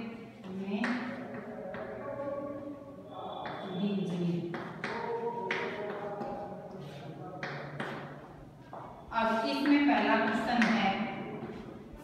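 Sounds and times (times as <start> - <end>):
chalk tapping on blackboard: 3.4 - 8.9.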